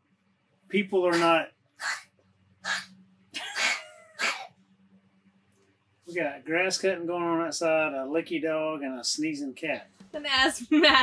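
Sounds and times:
cat sneezing: 1.1s - 2.0s, 2.7s - 4.5s.

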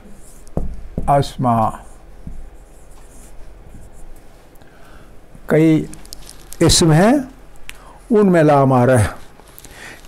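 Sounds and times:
marker scratching on whiteboard: 0.0s - 4.2s.

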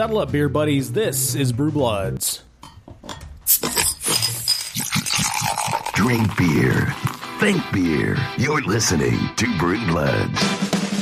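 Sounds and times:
glass clinking: 2.6s - 7.2s.

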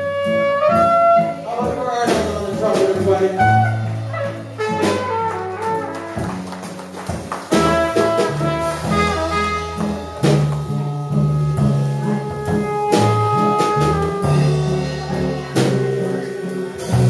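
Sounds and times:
trumpet long notes: 0.0s - 1.4s, 3.4s - 6.4s, 7.5s - 17.0s
jazz band playing: 0.0s - 17.0s
sharp drum hits: 7.5s - 17.0s.

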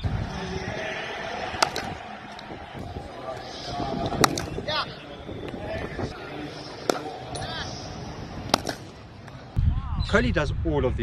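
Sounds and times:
background voices: 0.0s - 8.9s
cricket bat striking ball: 1.6s - 2.0s, 4.2s - 4.6s, 8.5s - 8.9s.

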